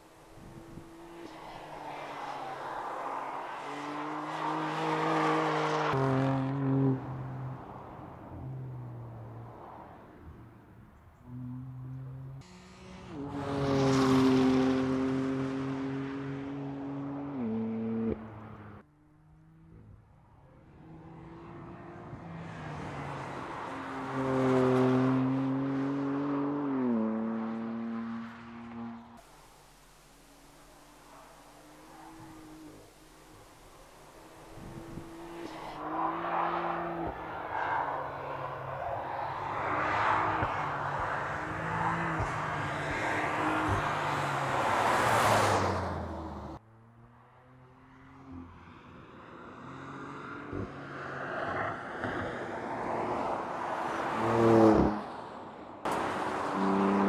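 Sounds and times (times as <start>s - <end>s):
car engine at speed: 0.0s - 57.0s.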